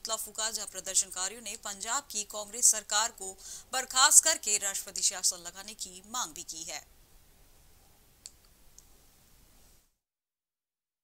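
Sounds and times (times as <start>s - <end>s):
faint background hiss: 0.0s - 10.0s
faint clicks: 8.2s - 8.9s.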